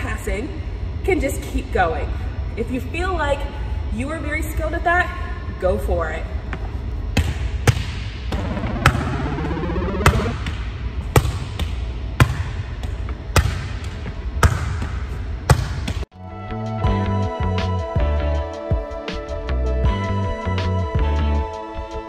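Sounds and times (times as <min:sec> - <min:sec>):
music: 0:08.3 - 0:10.4, 0:16.1 - 0:22.0
volleyball slapping: 0:10.0 - 0:16.0.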